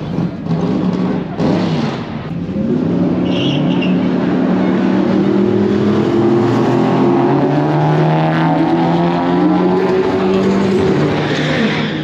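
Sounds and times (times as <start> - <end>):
drag racing car engines: 0.0 - 12.0.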